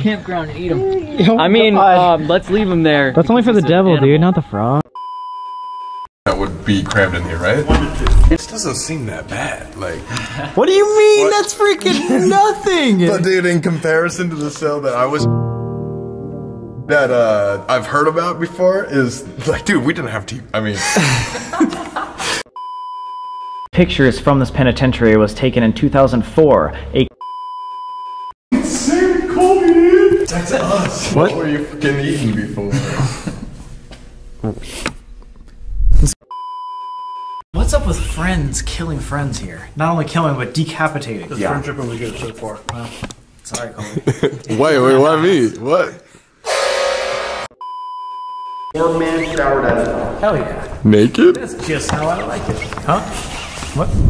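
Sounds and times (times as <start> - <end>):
high-pitched censor bleep: 5.0 - 6.1, 22.6 - 23.7, 27.2 - 28.3, 36.3 - 37.4, 46.5 - 48.7
steady high test tone beep: 36.3 - 37.4, 46.5 - 48.8
loud buzzy tone: 46.5 - 47.6.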